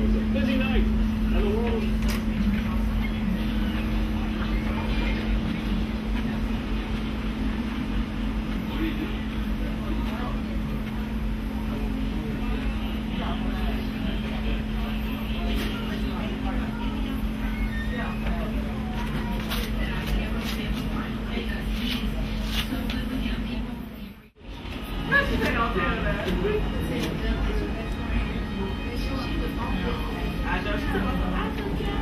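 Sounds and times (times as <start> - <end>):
faint indistinct voices: 0.0 - 32.0
steady low hum: 0.0 - 32.0.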